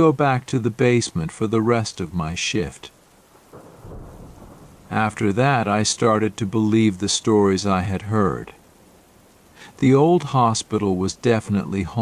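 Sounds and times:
rain: 0.0 - 12.0
low rumble of thunder: 3.3 - 7.5.

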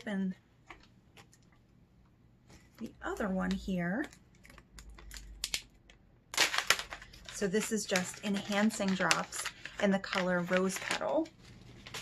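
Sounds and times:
packaging crackling and snapping: 3.5 - 12.0
packaging clicks: 4.0 - 11.2.

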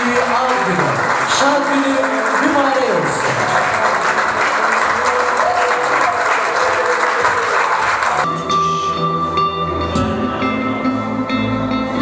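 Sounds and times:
applause: 0.0 - 8.3
background music: 0.0 - 12.0
crowd noise: 0.0 - 12.0.

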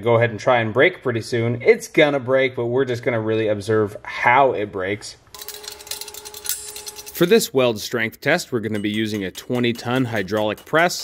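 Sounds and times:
metallic clinks and clicks: 5.3 - 7.6, 8.5 - 11.0.

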